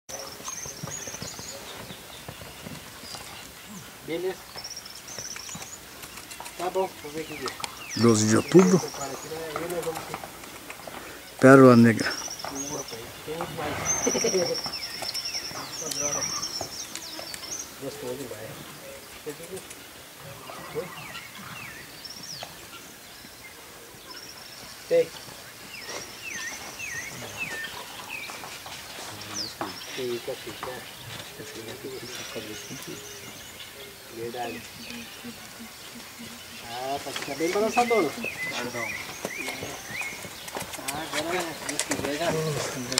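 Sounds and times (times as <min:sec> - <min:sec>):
bird chirps: 0:00.1 - 0:10.0, 0:11.0 - 0:18.2, 0:18.8 - 0:42.9
horse hooves trotting on sand: 0:00.1 - 0:11.4, 0:12.0 - 0:42.9.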